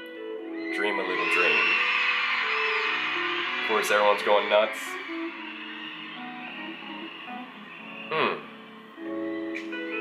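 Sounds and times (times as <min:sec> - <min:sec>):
piano playing: 0:00.0 - 0:10.0
soft instrumental music: 0:00.0 - 0:10.0.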